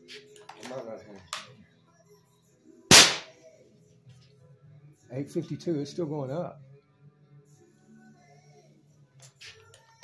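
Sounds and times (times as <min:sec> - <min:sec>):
air rifle shot: 0:02.9 - 0:03.3.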